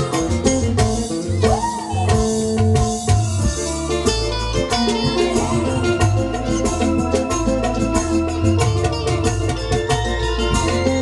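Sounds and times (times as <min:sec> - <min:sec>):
drum hits: 0:00.0 - 0:11.0
electric keyboard: 0:00.0 - 0:11.0
live band music: 0:00.0 - 0:11.0.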